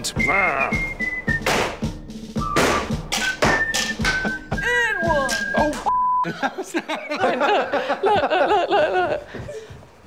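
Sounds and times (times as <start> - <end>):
music with steady beat: 0.0 - 5.9.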